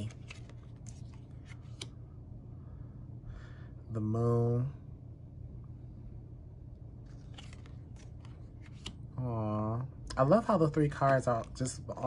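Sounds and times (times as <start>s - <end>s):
cards flicking and sliding: 0.0s - 2.0s, 7.1s - 9.0s
low steady hum: 0.0s - 12.0s.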